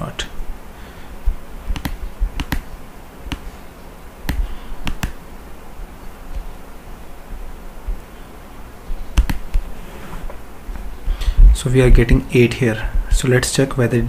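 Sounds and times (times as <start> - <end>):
low background hum: 0.0 - 14.0
computer mouse clicks: 1.7 - 2.7, 4.3 - 5.2, 9.2 - 9.6.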